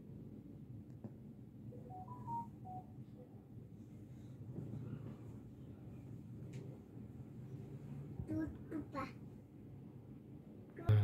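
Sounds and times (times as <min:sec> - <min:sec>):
electronic chime beeps: 0:01.8 - 0:02.9.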